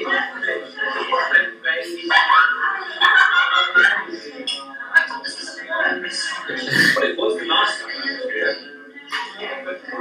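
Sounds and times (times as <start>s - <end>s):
indistinct voices over loudspeakers: 0.0s - 10.0s.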